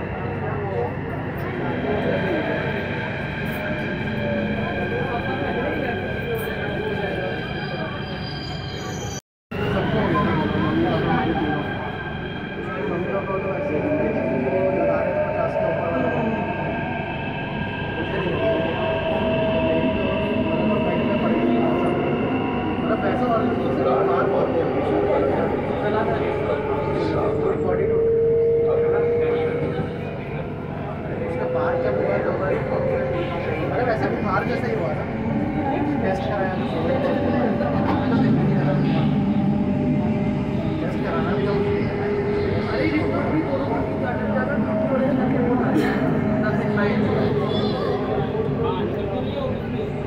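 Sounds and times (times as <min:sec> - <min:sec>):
train traction drive whine: 0:09.6 - 0:50.0.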